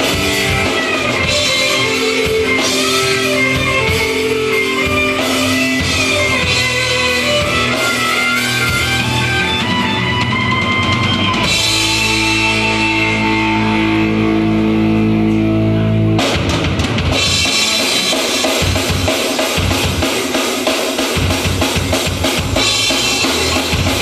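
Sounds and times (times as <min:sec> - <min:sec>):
pounding drums: 0:00.0 - 0:13.4, 0:16.1 - 0:24.0
distorted electric guitars: 0:00.0 - 0:24.0
hard rock band playing live: 0:00.0 - 0:24.0.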